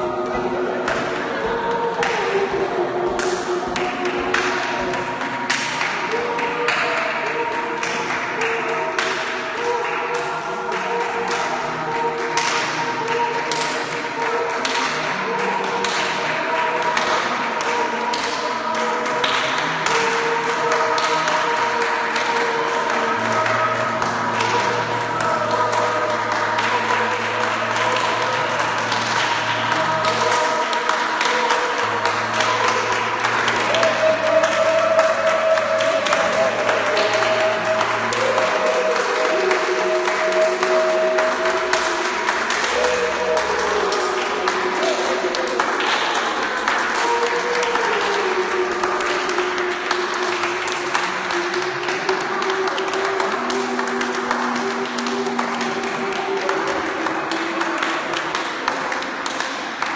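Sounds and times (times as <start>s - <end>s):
hand claps taps and thumps: 0.0s - 59.9s
long held overlapping tones: 0.0s - 59.9s.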